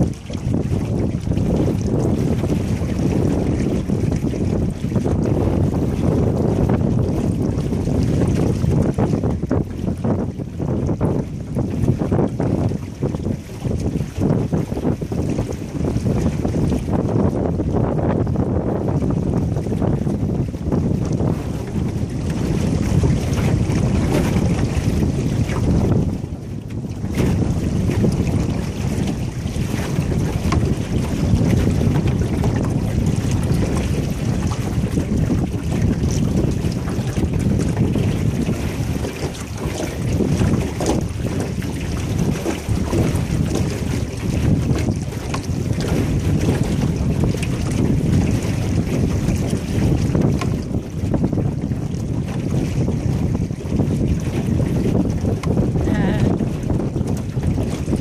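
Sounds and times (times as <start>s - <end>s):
water washing along hull: 0.0s - 58.0s
wind buffeting microphone: 0.0s - 58.0s.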